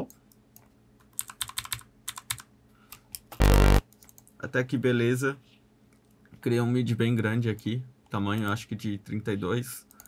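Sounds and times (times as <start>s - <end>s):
low synth note: 3.4s - 3.8s.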